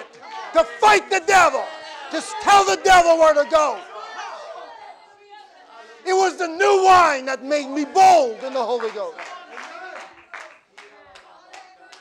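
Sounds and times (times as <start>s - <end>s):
hand claps: 8.4s - 12.0s.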